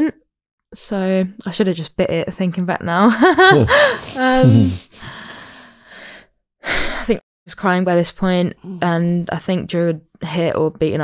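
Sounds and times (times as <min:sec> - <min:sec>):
woman sighing: 0:03.6 - 0:05.6
woman breathing in sharply: 0:03.7 - 0:07.1.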